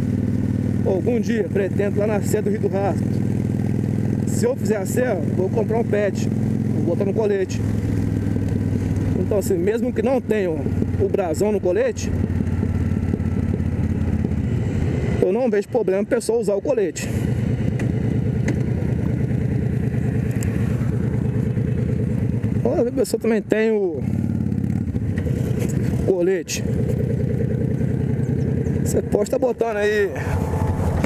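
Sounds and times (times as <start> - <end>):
motorcycle engine rumble: 0.0 - 31.0
wind and road noise: 0.0 - 31.0.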